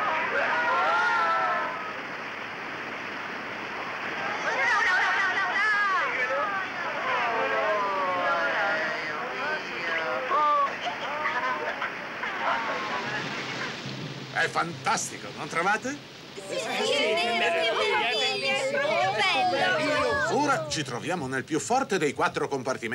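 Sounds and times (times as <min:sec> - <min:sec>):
steady rushing noise: 0:00.0 - 0:21.8
cartoon voices crying out: 0:16.6 - 0:20.9.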